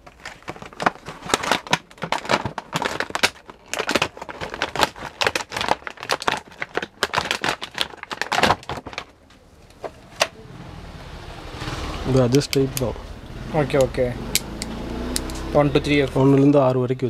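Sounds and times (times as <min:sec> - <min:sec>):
plastic packaging crinkling: 0:00.0 - 0:09.3.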